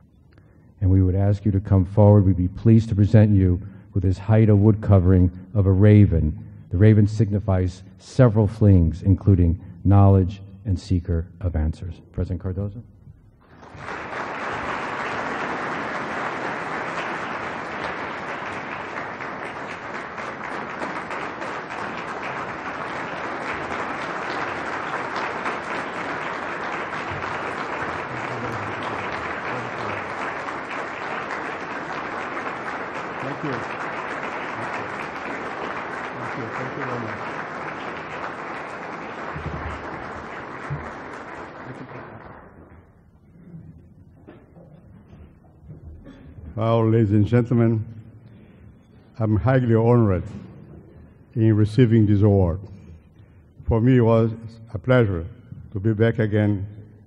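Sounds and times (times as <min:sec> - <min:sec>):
people applauding: 0:13.4 - 0:43.0.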